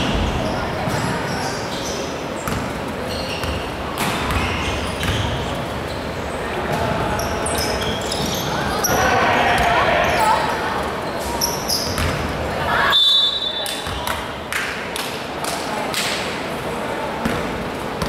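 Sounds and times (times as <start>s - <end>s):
sneakers squeaking: 0.0s - 14.4s
players calling out: 6.2s - 11.9s.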